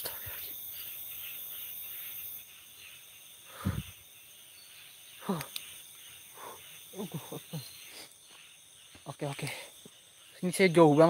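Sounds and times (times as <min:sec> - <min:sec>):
night insects chirring: 0:00.0 - 0:11.0.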